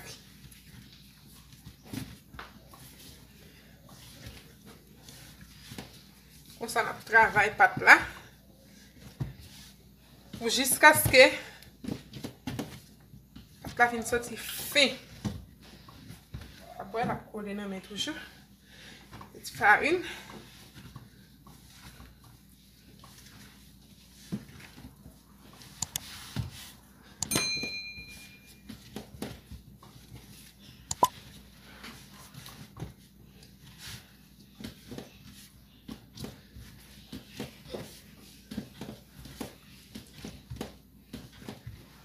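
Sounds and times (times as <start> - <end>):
ringing clink: 27.2 - 28.5.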